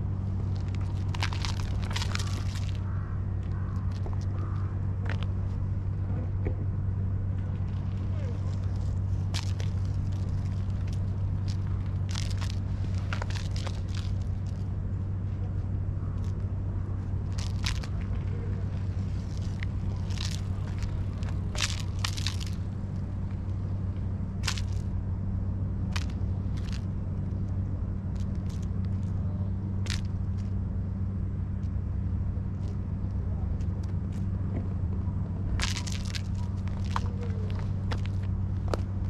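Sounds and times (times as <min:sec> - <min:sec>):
low engine drone: 0:00.0 - 0:39.0
low mechanical hum: 0:00.0 - 0:39.0.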